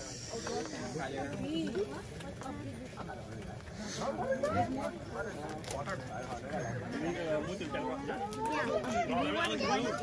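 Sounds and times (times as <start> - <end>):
indistinct conversation: 0.0 - 10.0.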